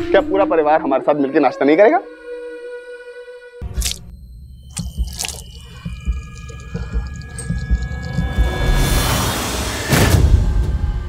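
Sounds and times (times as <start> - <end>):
low pulsing beats: 3.8 - 9.2.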